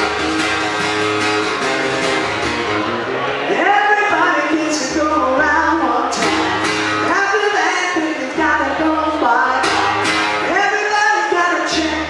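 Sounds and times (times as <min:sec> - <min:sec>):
acoustic guitar: 0:00.0 - 0:12.0
man singing: 0:03.5 - 0:12.0.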